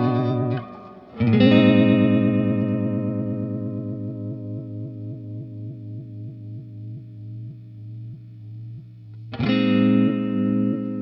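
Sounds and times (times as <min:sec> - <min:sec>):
electric guitar chord with wobble: 0:00.0 - 0:07.4, 0:09.4 - 0:11.0.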